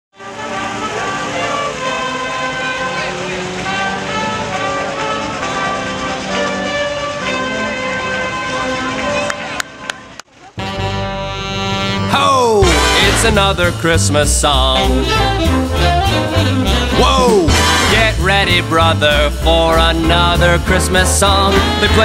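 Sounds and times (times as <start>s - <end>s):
brass band playing: 0.2s - 22.0s.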